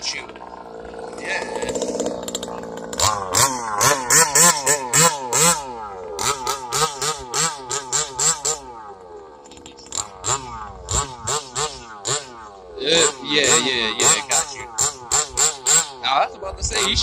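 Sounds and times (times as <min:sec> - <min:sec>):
two-stroke engine revving: 0:00.0 - 0:17.0.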